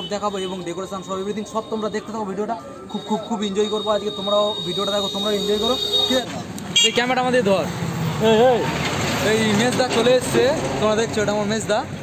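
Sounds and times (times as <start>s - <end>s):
people's voices: 0.0s - 6.7s
heavy lorry engine rumbling: 7.4s - 11.3s.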